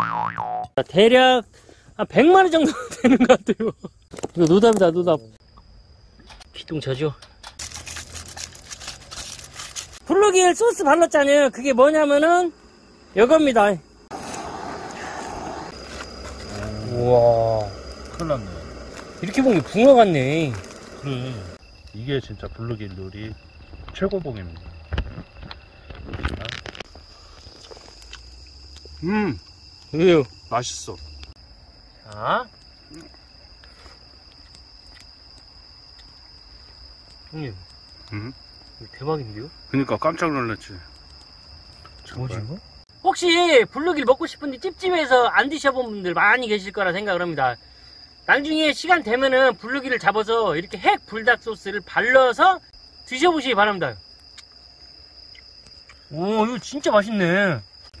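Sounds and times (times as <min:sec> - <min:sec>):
crickets chirping: 0:00.0 - 0:58.0
foil rustling: 0:07.6 - 0:10.1.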